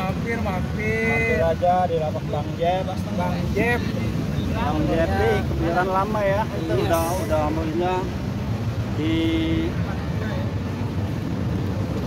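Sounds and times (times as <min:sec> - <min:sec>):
city hubbub: 0:00.0 - 0:12.0
street traffic rumble: 0:00.0 - 0:12.0.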